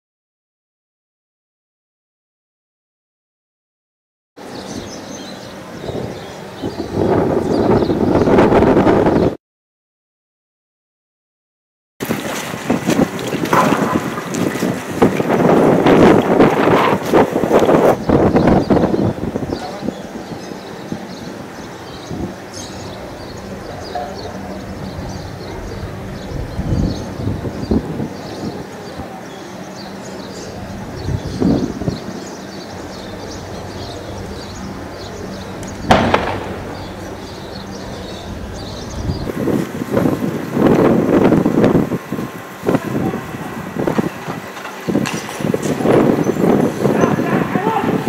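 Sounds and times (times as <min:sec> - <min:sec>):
street voices: 0:12.3 - 0:48.0
crowd commotion: 0:32.5 - 0:39.4
sharp bang: 0:33.6 - 0:39.3.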